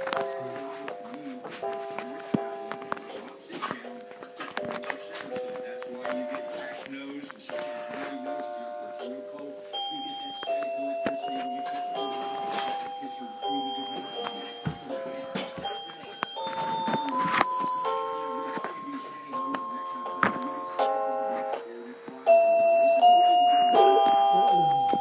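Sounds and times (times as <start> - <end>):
toy keyboard chime-like notes: 0.0 - 25.0.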